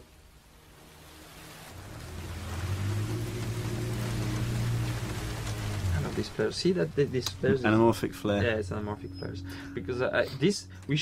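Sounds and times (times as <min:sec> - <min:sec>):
low steady drone: 0:00.1 - 0:11.0.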